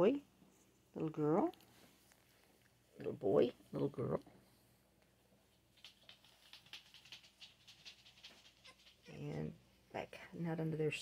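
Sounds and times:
puppies ticking and huffing: 5.6s - 9.2s.

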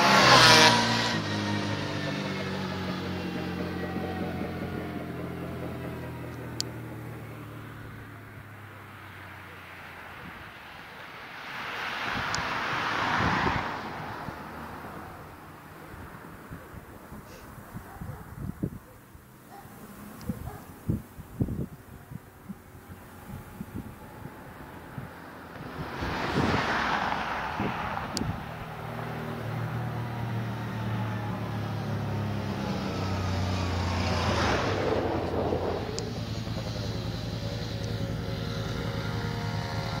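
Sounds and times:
road vehicles passing by: 0.0s - 40.0s
sport motorcycle: 0.0s - 40.0s
engine running steadily: 1.0s - 10.3s, 28.1s - 40.0s
wind buffeting microphone: 16.5s - 19.0s, 20.2s - 28.8s, 34.2s - 36.8s.

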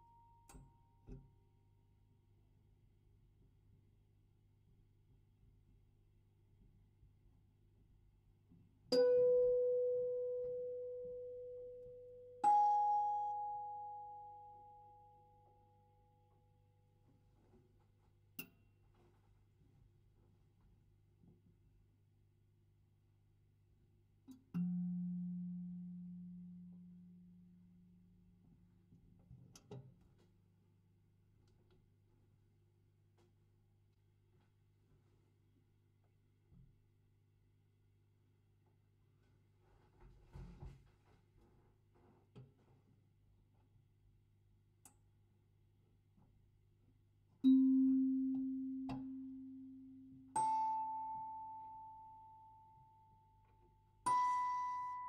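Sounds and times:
music box notes: 12.4s - 15.1s, 50.3s - 52.8s, 54.0s - 55.0s.

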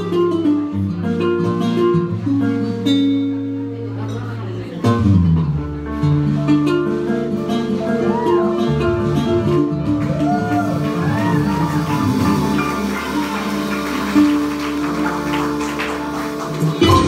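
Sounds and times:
drums and percussion: 10.5s - 17.0s.

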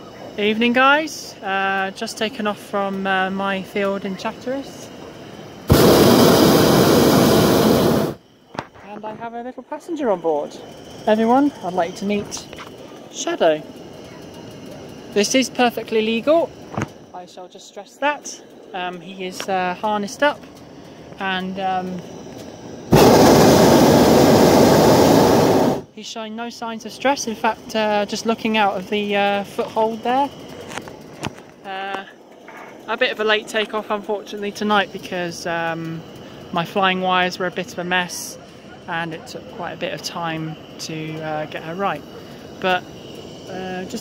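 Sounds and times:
propane burner blast: 0.3s - 8.7s, 10.0s - 17.2s, 18.3s - 26.0s, 26.9s - 44.0s.

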